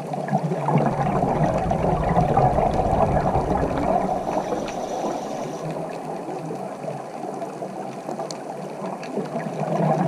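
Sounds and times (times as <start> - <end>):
underwater bubbling: 0.0 - 10.0
faint clicks: 7.9 - 9.5.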